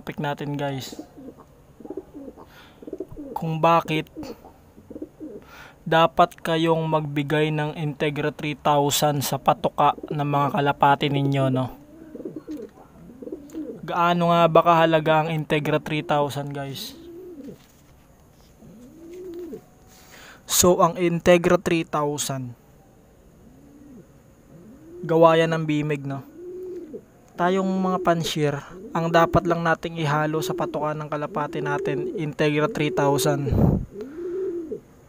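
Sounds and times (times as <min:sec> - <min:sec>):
pigeons cooing: 0:00.8 - 0:05.7, 0:09.1 - 0:14.5, 0:15.5 - 0:17.8, 0:18.4 - 0:20.3, 0:23.4 - 0:35.0.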